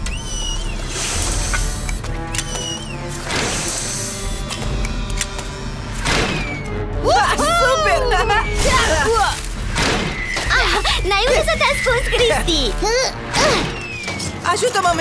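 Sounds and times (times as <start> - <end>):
cartoon background music: 0.0 - 15.0
hissing bursts: 0.2 - 2.0
voices exclaiming: 10.4 - 13.9.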